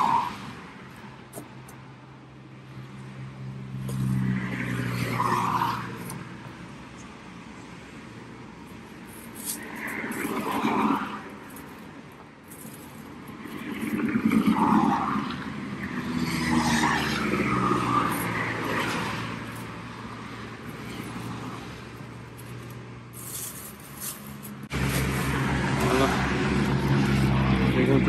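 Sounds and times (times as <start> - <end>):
cars passing on highway: 0.0 - 28.0.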